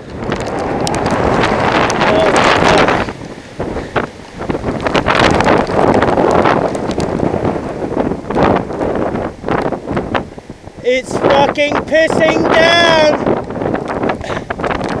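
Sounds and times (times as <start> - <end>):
gusting wind buffeting microphone: 0.0 - 15.0
heavy rain falling: 0.0 - 15.0.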